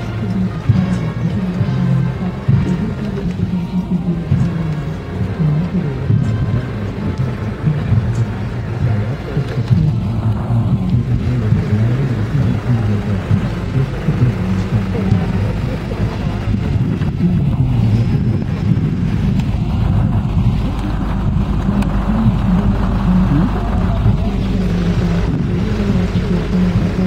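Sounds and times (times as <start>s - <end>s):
vehicle engines rumbling: 0.0s - 27.0s.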